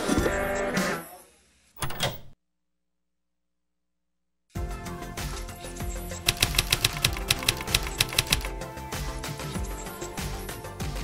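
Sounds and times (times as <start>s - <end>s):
background music: 4.6s - 11.0s
typewriter key clicks: 6.3s - 8.5s.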